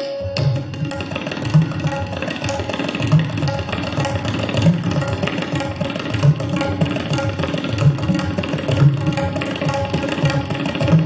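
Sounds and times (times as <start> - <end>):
fast tabla strokes: 0.0 - 11.0.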